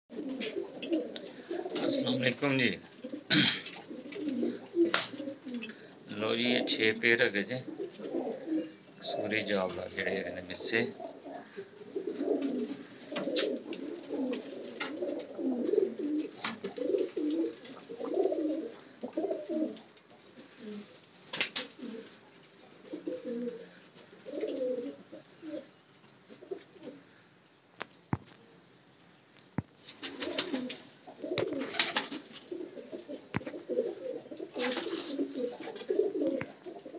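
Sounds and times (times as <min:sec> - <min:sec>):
pigeons cooing: 0:00.1 - 0:27.2, 0:30.0 - 0:36.9.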